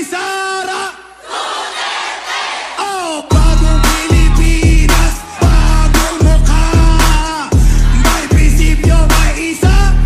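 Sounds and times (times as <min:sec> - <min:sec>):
crowd cheering and shouting: 0:01.2 - 0:10.0.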